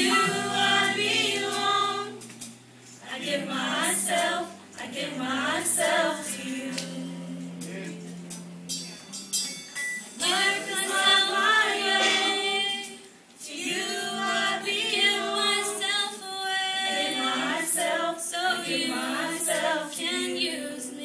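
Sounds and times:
choir singing worship song: 0.0 - 8.6, 10.2 - 21.0.

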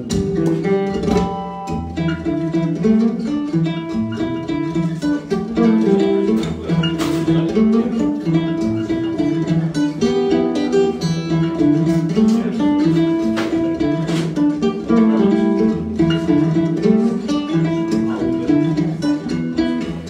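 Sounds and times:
acoustic guitar playing: 0.0 - 20.0.

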